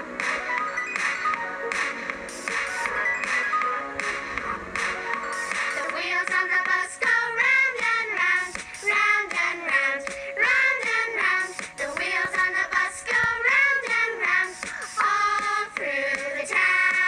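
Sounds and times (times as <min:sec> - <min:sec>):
backing music: 0:00.0 - 0:17.0
childlike singing voice: 0:05.8 - 0:17.0.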